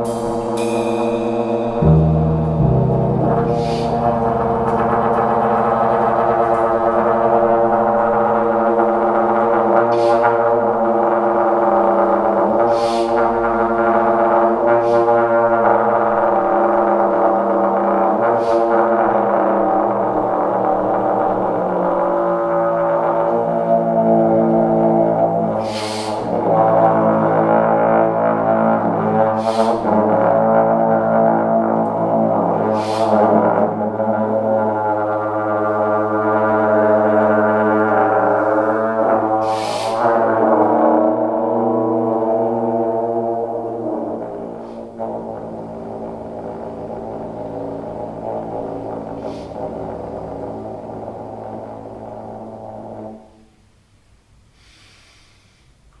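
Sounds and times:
high hissing wash: 0.0 - 4.7, 25.6 - 26.2, 39.4 - 40.0
cymbal crash: 0.0 - 8.2
drum kit: 0.0 - 8.4
double bass: 0.0 - 53.7
steady low tone: 0.0 - 53.8
trombone droning notes: 0.0 - 53.9.

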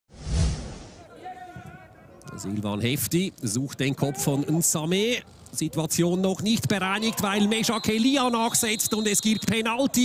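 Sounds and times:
whoosh with deep thud: 0.1 - 1.0.

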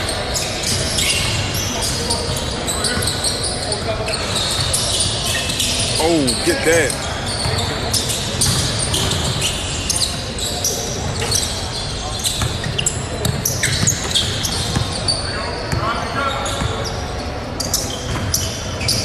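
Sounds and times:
player shouting: 6.0 - 7.0.

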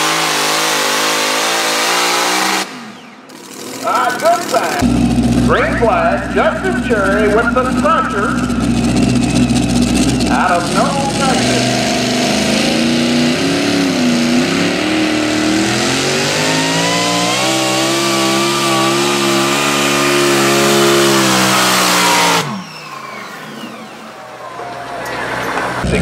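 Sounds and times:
tractor engine at full power: 0.0 - 26.0.

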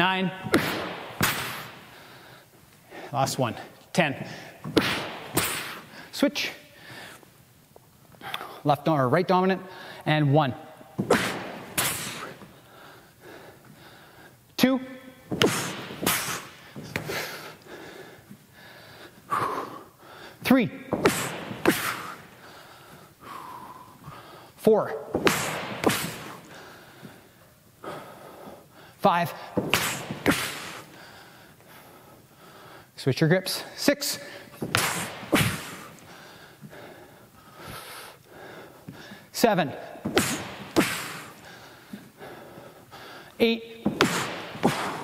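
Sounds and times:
sharp forceful breaths: 0.0 - 7.3, 9.6 - 10.2, 10.8 - 14.5, 15.2 - 33.0, 33.6 - 45.0.

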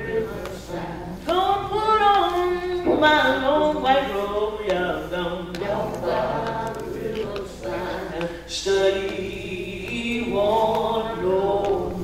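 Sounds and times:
group singing unaccompanied: 0.0 - 12.0.

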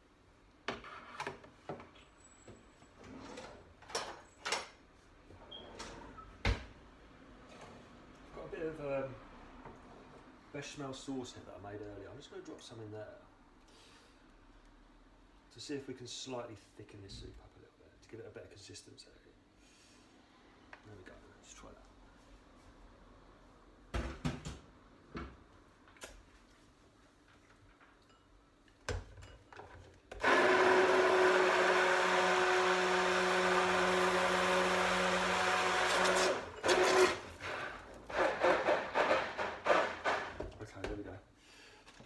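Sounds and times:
stick blender running: 30.2 - 40.4.

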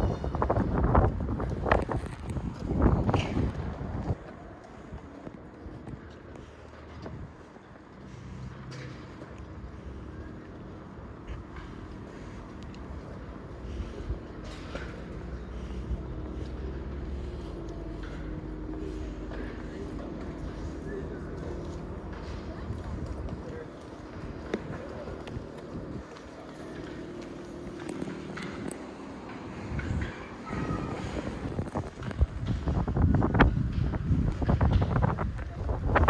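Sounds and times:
wind on microphone: 0.0 - 6.1, 29.6 - 36.0
footsteps on paved path: 0.0 - 36.0
low outdoor rumble: 0.0 - 36.0.

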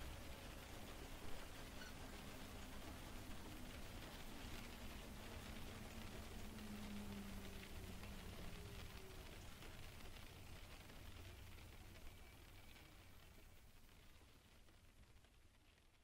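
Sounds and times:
faint low hum: 0.0 - 16.0
faint steady rain: 0.0 - 16.0.

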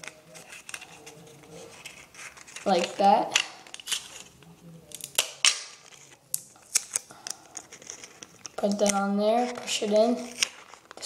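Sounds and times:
sticky tape crackling and clicking: 0.0 - 11.0.

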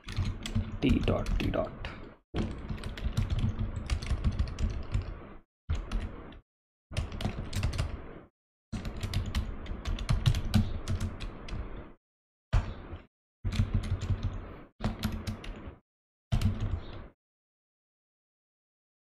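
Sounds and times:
computer keyboard typing: 0.0 - 1.7, 2.4 - 6.1, 7.0 - 8.1, 8.8 - 11.6, 13.5 - 15.7, 16.4 - 17.1.

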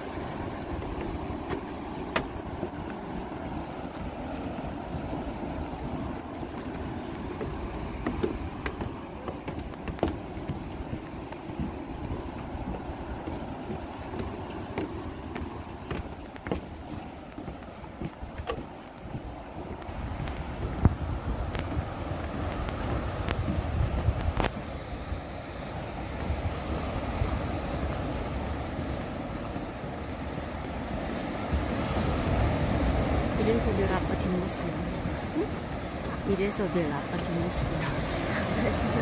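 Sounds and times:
wind buffeting microphone: 0.0 - 39.0.

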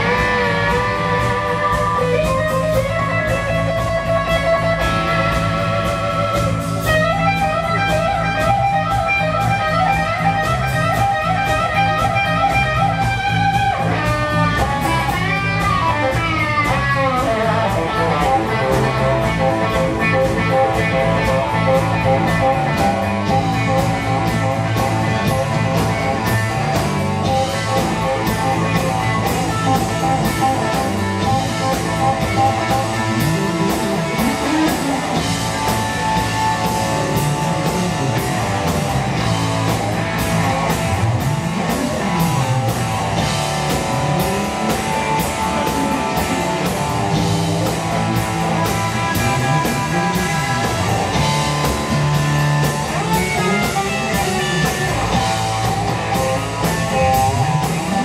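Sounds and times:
bass line: 0.0 - 58.0
drums: 0.0 - 58.0
electric guitar solo: 0.0 - 58.0.

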